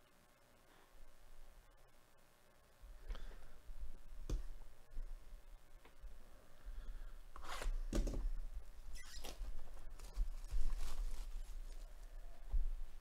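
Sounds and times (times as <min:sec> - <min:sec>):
plastic shrink-wrap crinkling: 0:09.1 - 0:11.9.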